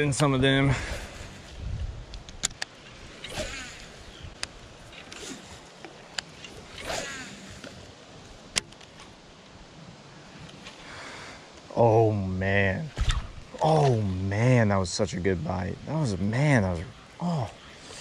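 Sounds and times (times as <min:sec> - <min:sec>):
sharp clicks: 0:02.1 - 0:03.4
fishing rod and reel handling: 0:02.1 - 0:07.9.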